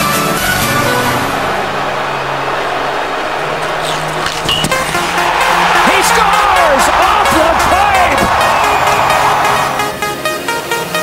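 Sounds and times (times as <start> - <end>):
large crowd in a stadium: 0.0 - 10.0.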